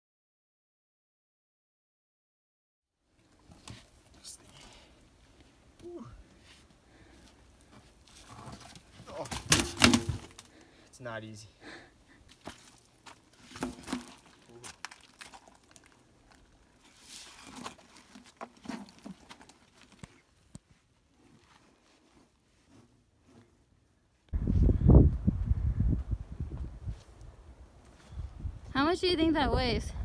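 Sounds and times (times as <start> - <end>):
plastic bag crinkling: 13.9 - 20.0.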